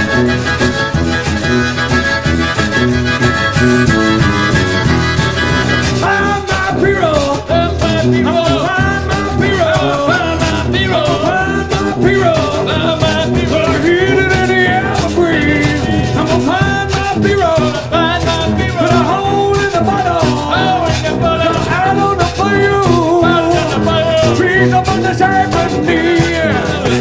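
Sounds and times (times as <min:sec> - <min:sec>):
wavering melody line: 0:00.0 - 0:06.6
live band playing americana: 0:00.0 - 0:27.0.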